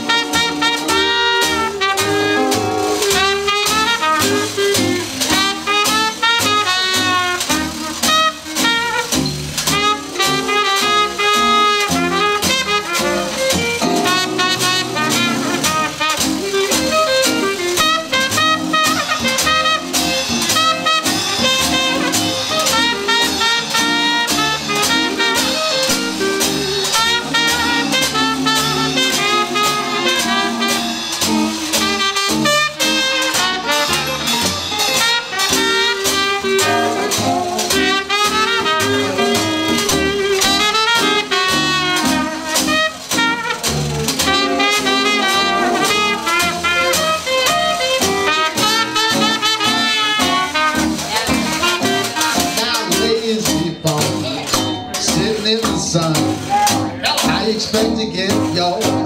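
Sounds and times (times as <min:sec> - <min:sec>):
cornet and clarinet melody: 0:00.0 - 0:59.0
rhythm guitar: 0:00.0 - 0:59.0
string bass: 0:00.0 - 0:59.0.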